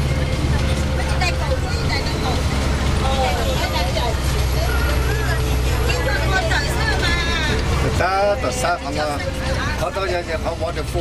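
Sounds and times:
people talking: 0.0s - 11.0s
vehicle engine and tyres drone: 0.0s - 11.0s.

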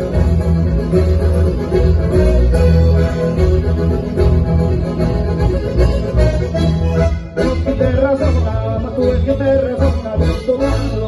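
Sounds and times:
acoustic guitar: 0.0s - 11.0s
button accordions playing: 0.0s - 11.0s.

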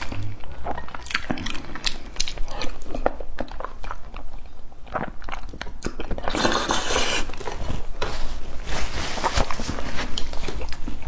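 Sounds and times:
man chewing with wet clicks: 0.0s - 6.4s.

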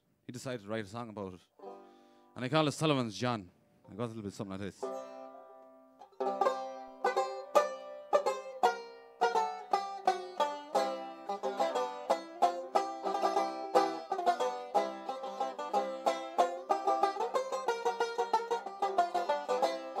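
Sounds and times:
banjo playing: 1.6s - 2.2s, 4.8s - 20.0s.

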